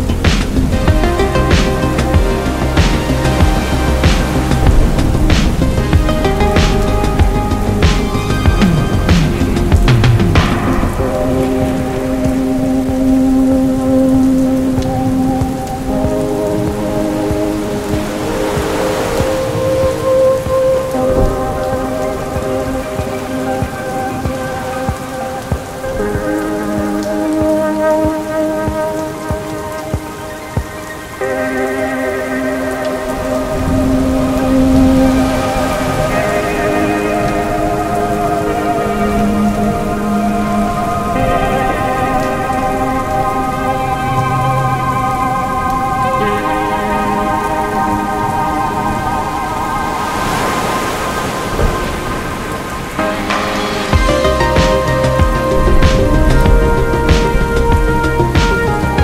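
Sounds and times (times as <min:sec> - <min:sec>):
steady rain: 0:00.0 - 0:59.0
synthesizer pad chords: 0:00.0 - 0:59.0.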